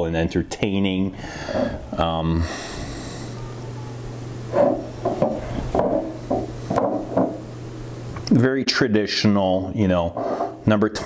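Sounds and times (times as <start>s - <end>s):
steady low hum: 0.0s - 11.0s
glass bottles knocking on wood: 5.1s - 7.4s.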